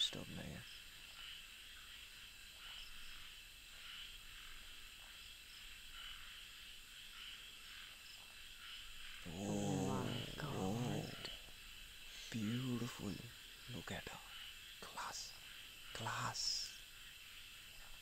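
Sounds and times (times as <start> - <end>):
crickets chirping: 0.0 - 18.0
low voiced sound: 9.2 - 11.5.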